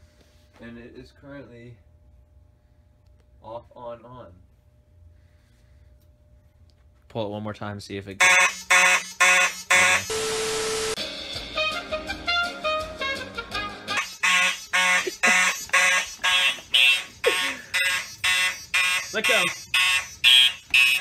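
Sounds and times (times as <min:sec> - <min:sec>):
pulsing fire alarm horns: 0:08.2 - 0:11.0, 0:13.9 - 0:21.0
music with changing notes: 0:10.1 - 0:14.0.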